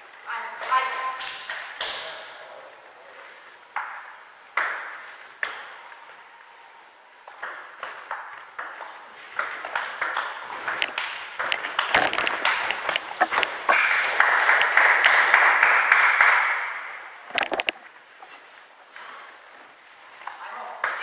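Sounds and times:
table tennis ball clicking: 7.3 - 13.5.

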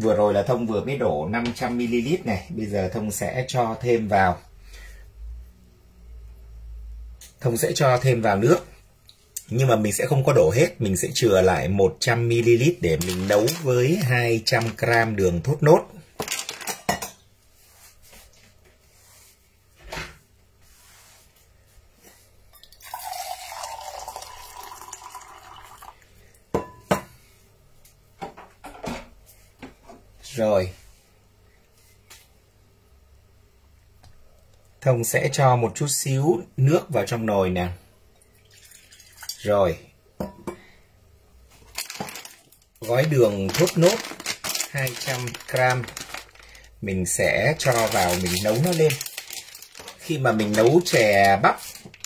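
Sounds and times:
water pouring into metal pot: 22.6 - 26.0, 38.2 - 39.4
metal pot and cup clinking: 26.6 - 27.1.

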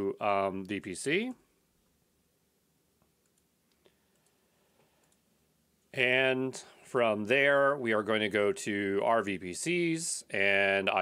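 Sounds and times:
computer mouse clicks: 3.0 - 5.3.

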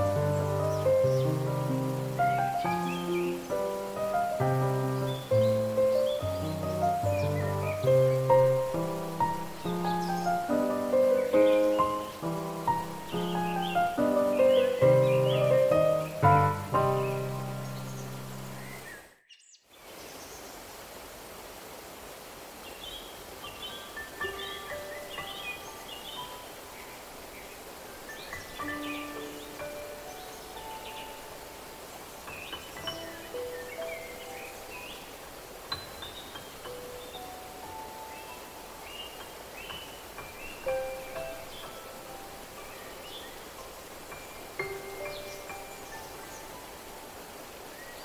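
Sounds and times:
flowing stream water: 0.0 - 19.1, 19.7 - 48.0
birds chirping: 0.0 - 20.5, 22.5 - 48.0.

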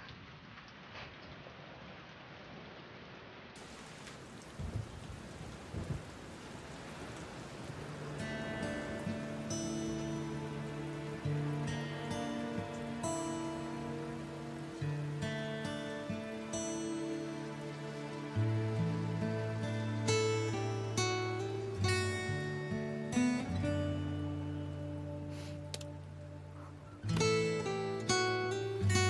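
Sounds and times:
steady rain falling: 0.0 - 29.0
low rumbles of thunder: 4.5 - 6.3
soft music with sustained notes: 7.1 - 29.0.

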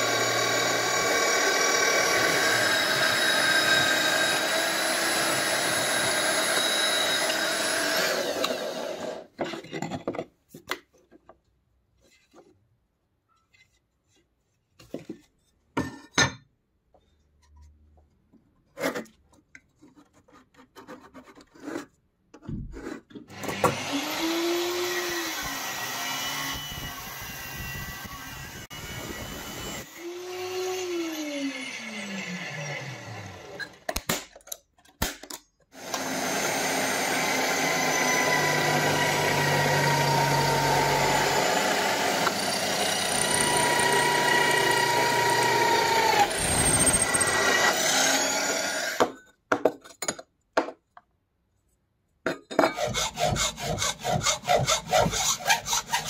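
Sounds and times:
electric drill boring through metal: 0.0 - 9.3, 23.3 - 33.9, 35.8 - 49.2.

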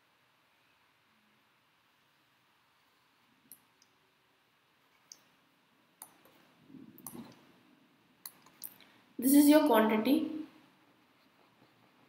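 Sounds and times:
soft rustle: 2.6 - 3.8, 10.8 - 12.0.

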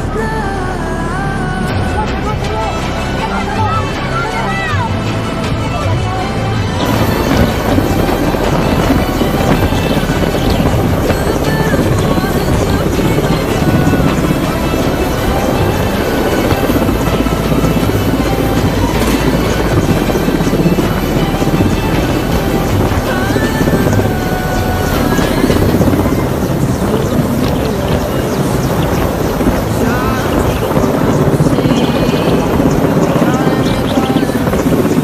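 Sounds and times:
helicopter hovering: 0.0 - 35.0
music: 0.0 - 35.0.

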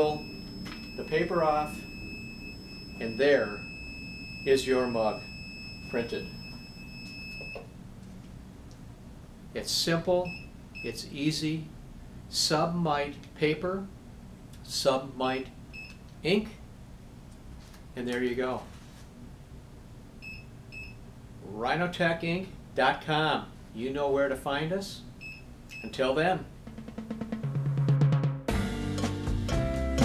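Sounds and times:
high-pitched electronic alarm tone: 0.0 - 7.6.

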